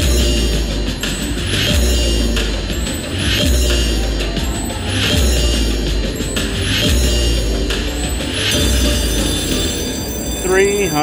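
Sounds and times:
slot machine win music and chimes: 0.0 - 11.0
bright sparkle sound burst: 8.5 - 11.0.

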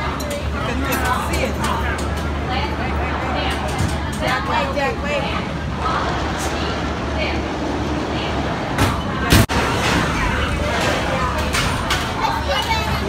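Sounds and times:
background chatter: 0.0 - 13.0
steady low hum: 0.0 - 13.0.

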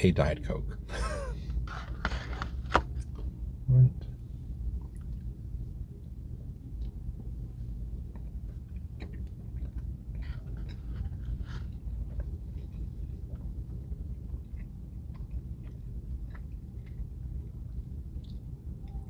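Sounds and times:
low cabin hum: 0.0 - 19.0
person chewing with mouth smacks: 4.8 - 19.0.

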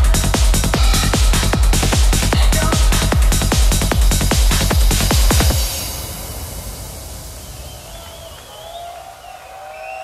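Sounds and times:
noise wash: 3.4 - 10.0.

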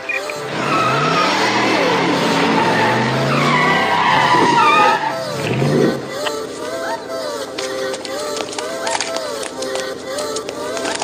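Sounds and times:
tires squealing: 0.0 - 6.2
car engine revving: 0.3 - 6.2.

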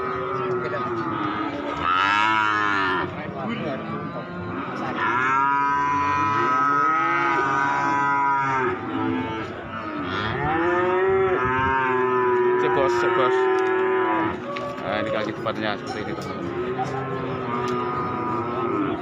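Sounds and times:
cattle mooing: 0.0 - 3.1, 4.3 - 14.4, 15.9 - 19.0.

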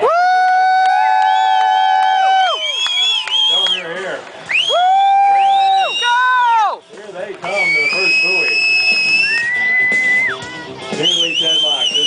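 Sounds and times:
crowd voices and shouts: 0.0 - 12.0
spectators whistling: 1.2 - 6.5, 7.4 - 12.0.

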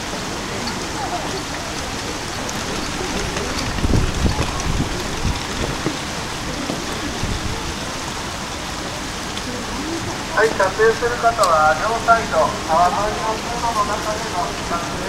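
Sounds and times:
water rushing down concrete channel: 0.0 - 15.0
low bumps: 1.8 - 7.8.

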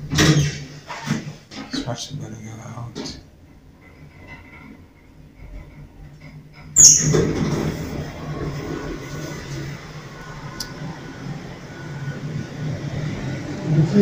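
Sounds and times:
elevator hum and rumble: 0.0 - 14.0
elevator clunk: 5.5 - 9.0
short high squeal: 6.8 - 7.2.

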